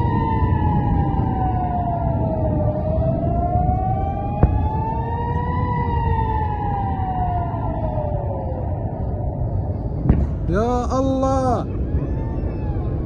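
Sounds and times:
air-raid siren wailing: 0.0 - 13.0.

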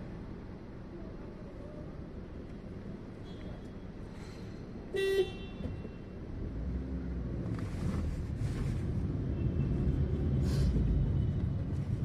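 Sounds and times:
idling traffic rumble: 0.0 - 4.9, 6.1 - 12.0.

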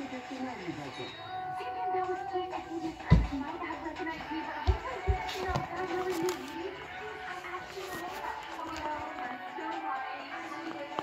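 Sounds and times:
music with sung vocals: 0.0 - 11.0.

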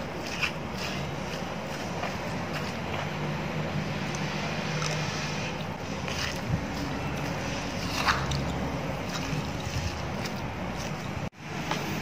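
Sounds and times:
pestle squelching and scraping: 0.0 - 12.0.

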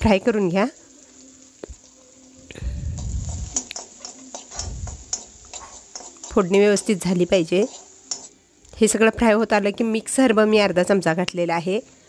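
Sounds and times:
food sizzling and spattering in oil: 0.0 - 10.7
spatula scraping and knocking pan: 3.0 - 8.4.

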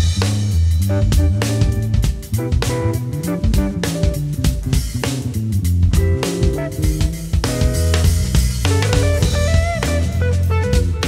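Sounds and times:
bass guitar: 0.0 - 11.0
drum kit: 0.0 - 11.0
electric guitar: 0.9 - 5.3, 5.9 - 11.0.

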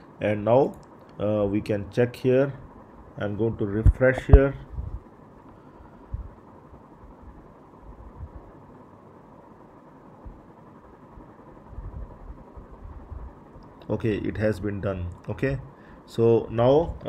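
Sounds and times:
low room tone hum: 0.0 - 17.0.

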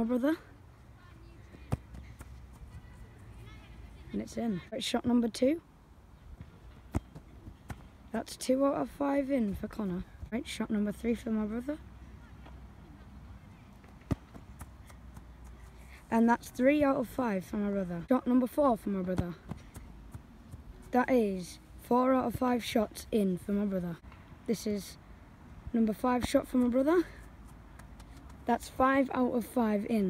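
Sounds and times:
faint outdoor background: 0.0 - 30.0
foot kicking football thud: 14.0 - 14.7.

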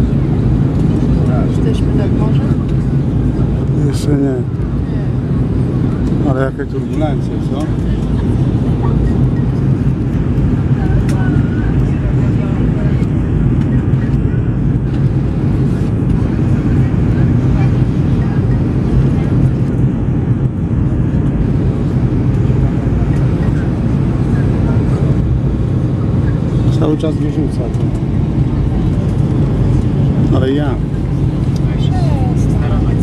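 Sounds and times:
faint passenger voices: 0.0 - 33.0
jet cabin engine rumble: 0.0 - 33.0.

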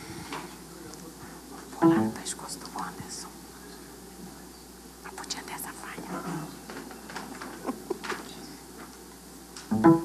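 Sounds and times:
people whispering: 0.0 - 9.4.

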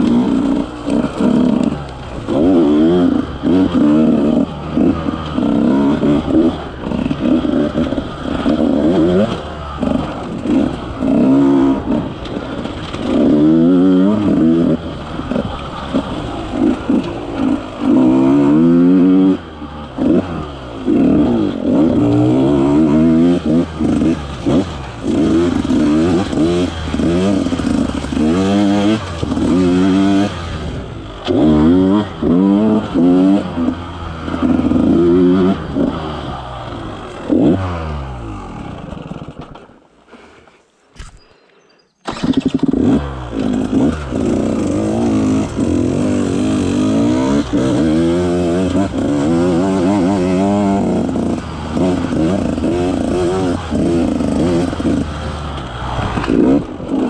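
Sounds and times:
two-stroke engine revving: 0.0 - 39.6, 42.0 - 57.0.

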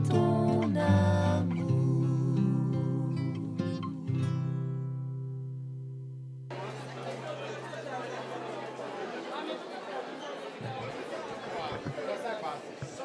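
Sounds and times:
crowd chatter in a hall: 6.5 - 13.0.

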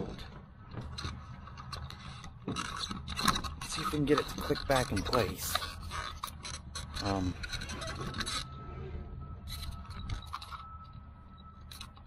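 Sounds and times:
metal scraping: 0.0 - 12.0
low rumble: 7.7 - 11.6.

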